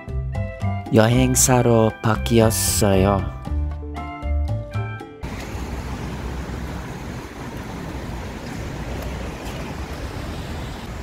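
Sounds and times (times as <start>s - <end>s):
background music: 0.0s - 5.7s
street noise hiss: 5.2s - 11.0s
wind rumble on microphone: 5.2s - 11.0s.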